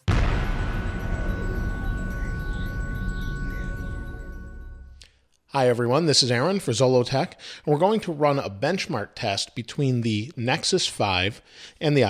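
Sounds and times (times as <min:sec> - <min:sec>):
low rumble: 0:00.0 - 0:05.0
synth chord: 0:00.0 - 0:05.0
chime-like shimmer: 0:00.0 - 0:05.1.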